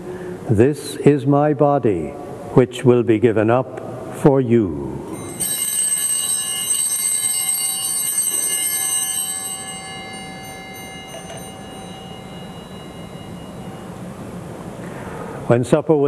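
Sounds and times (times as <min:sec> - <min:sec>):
altar bells ringing: 0:05.1 - 0:14.8.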